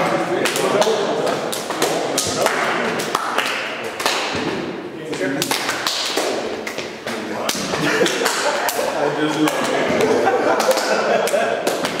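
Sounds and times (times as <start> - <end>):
many voices talking: 0.0 - 12.0
hand claps and slaps: 0.4 - 12.0.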